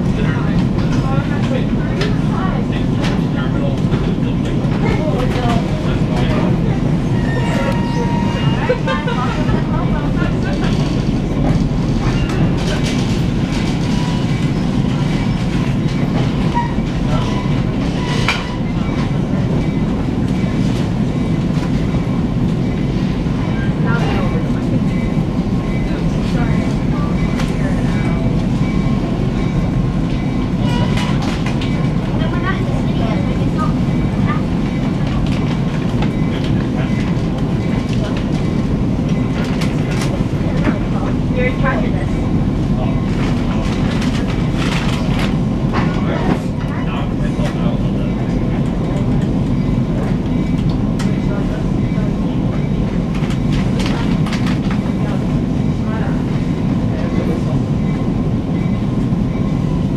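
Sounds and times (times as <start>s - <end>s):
train wheels rumbling on track: 0.0s - 59.9s
rail joint clicks: 9.5s - 41.4s, 42.2s - 59.9s.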